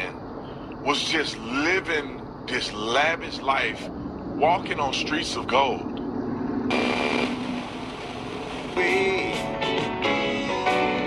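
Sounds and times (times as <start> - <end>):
low hum: 0.0 - 9.4
radio static hiss: 6.7 - 9.5.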